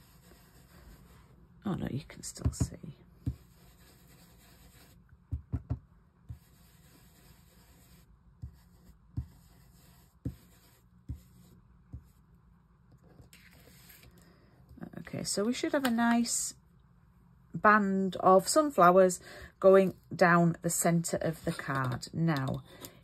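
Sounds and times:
soft brushing on card: 0.0 - 1.4, 3.2 - 5.0, 6.3 - 12.3, 13.2 - 14.2.

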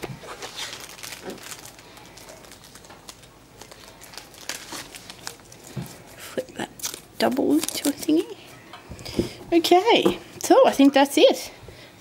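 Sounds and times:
plastic packaging crinkling: 0.0 - 8.4.

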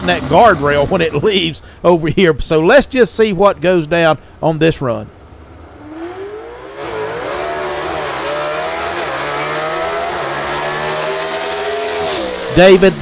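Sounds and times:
drag car engine revving: 5.4 - 13.0.

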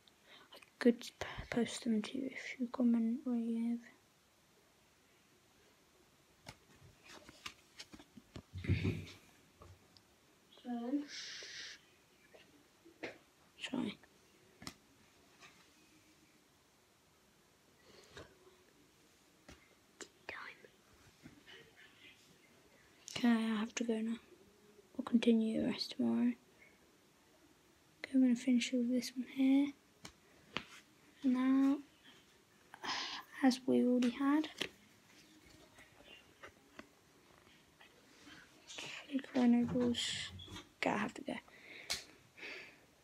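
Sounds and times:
faint whispering: 0.3 - 4.0, 10.5 - 12.6, 20.0 - 24.3, 37.8 - 41.5.

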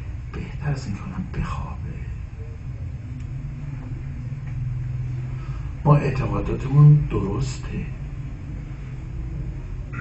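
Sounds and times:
low hum: 0.0 - 10.0
low rumble: 0.0 - 10.0.

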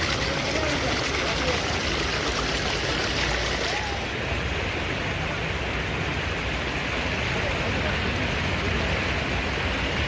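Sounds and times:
water rushing: 0.0 - 10.0.

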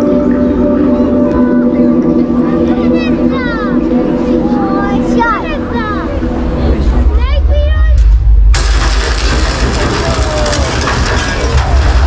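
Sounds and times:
deep low drone: 0.0 - 12.0
loud bass-laden noise burst: 6.1 - 12.0.

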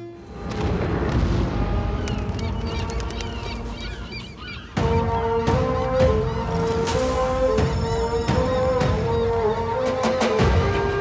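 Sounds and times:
flock of birds calling: 0.0 - 11.0
music: 0.0 - 11.0.

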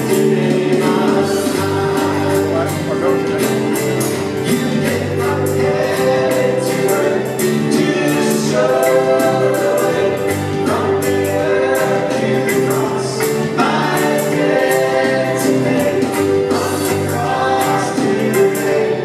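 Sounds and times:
drum kit steady beat: 0.0 - 19.0
guitars: 0.0 - 19.0
keyboards: 0.0 - 19.0
voices singing along: 0.0 - 19.0.

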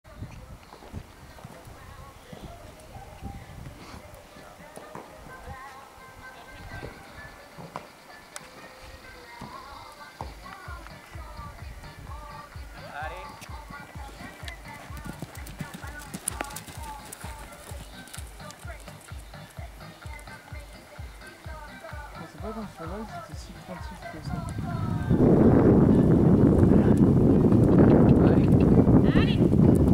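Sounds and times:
voices: 0.1 - 27.1
background music: 0.2 - 26.6
hoofbeats on sand: 6.6 - 20.7.

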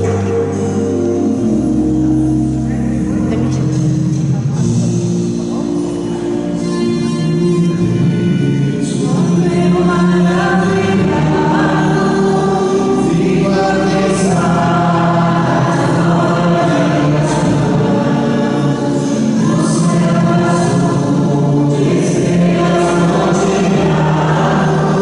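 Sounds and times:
choir singing a hymn: 0.0 - 3.8, 4.6 - 25.0.

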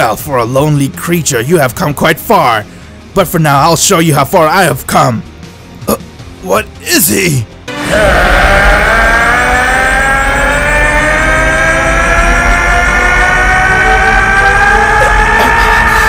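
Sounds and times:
low rumble: 7.7 - 16.0
man screaming rising in pitch: 7.7 - 16.0.

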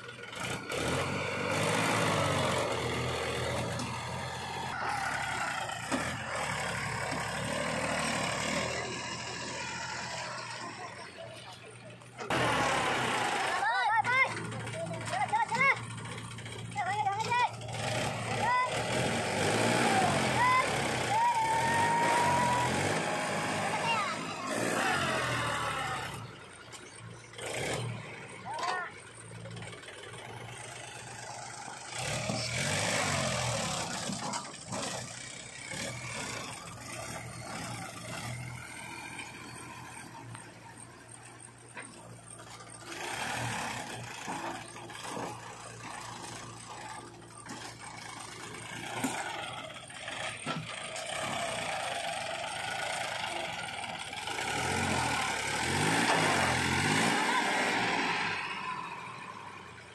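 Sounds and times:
diesel engines revving: 0.0 - 59.9.

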